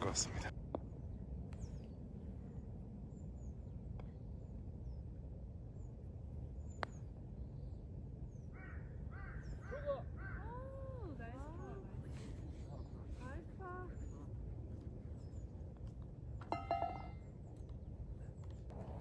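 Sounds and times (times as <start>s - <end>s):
crow cawing: 8.5s - 10.5s.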